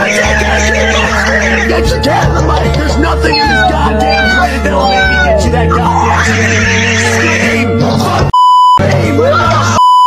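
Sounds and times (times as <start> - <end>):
music: 0.0 - 10.0
voices shouting: 2.9 - 7.6
censor bleep: 8.3 - 8.8, 9.8 - 10.0.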